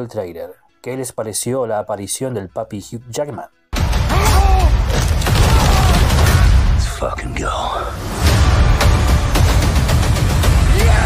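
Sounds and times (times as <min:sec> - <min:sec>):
person shouting: 0:04.1 - 0:06.2, 0:10.6 - 0:11.0
rapid gunfire: 0:05.0 - 0:06.6
music with pounding beat: 0:08.2 - 0:11.0.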